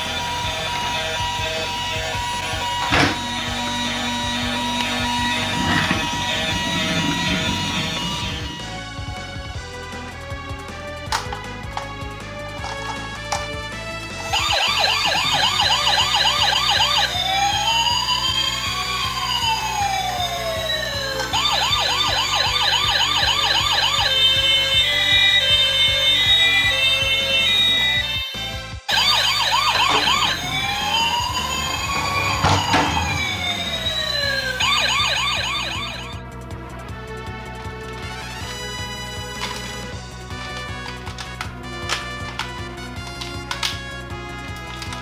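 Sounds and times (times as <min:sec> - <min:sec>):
toy electronic siren: 0:00.0 - 0:09.0, 0:14.2 - 0:36.2
background music: 0:00.0 - 0:45.0.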